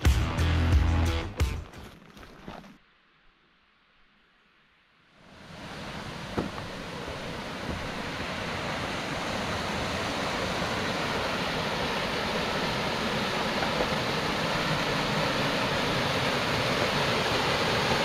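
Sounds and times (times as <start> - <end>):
waterfall rushing into pool: 5.2 - 18.0.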